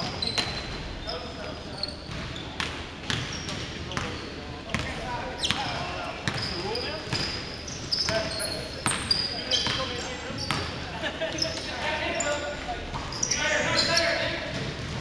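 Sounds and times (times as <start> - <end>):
sneakers squeaking on floor: 0.0 - 15.0.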